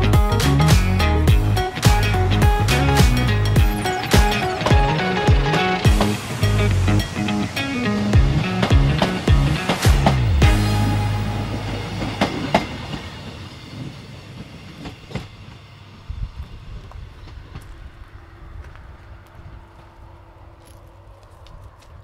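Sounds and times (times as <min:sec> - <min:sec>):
train rumbling past: 0:00.0 - 0:22.0
train wheels clacking on rails: 0:03.1 - 0:17.8.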